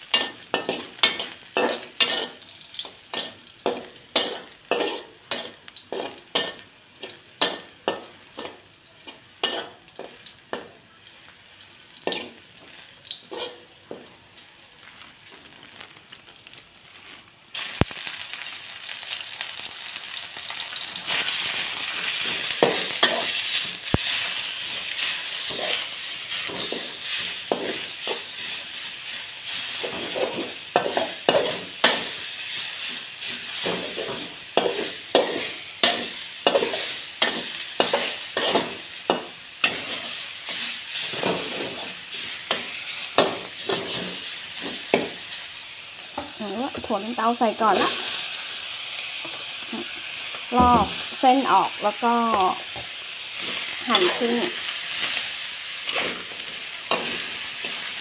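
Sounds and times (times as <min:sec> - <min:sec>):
meat sizzling in hot oil: 0:00.0 - 0:58.0
metal spatula scraping a wok: 0:00.1 - 0:02.4, 0:03.1 - 0:09.8, 0:13.3 - 0:13.7, 0:21.1 - 0:28.7, 0:29.5 - 0:45.2, 0:55.8 - 0:58.0.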